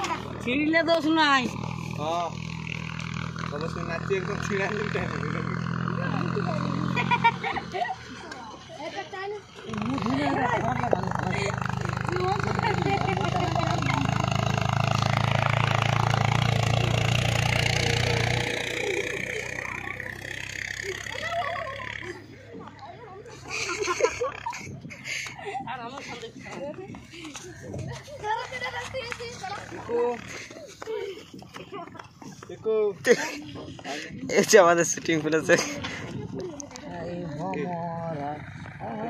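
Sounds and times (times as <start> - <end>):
people talking and calling: 0.0 - 39.0.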